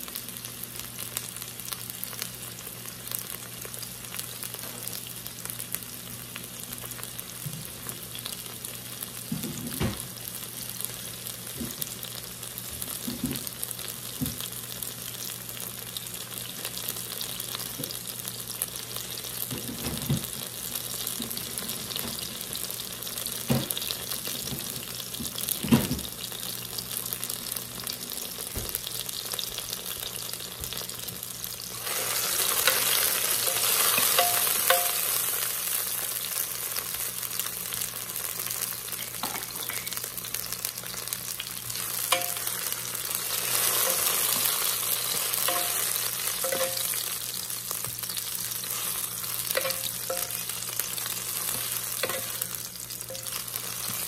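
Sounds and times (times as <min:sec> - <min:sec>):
onion rings sizzling in oil: 0:00.0 - 0:54.0.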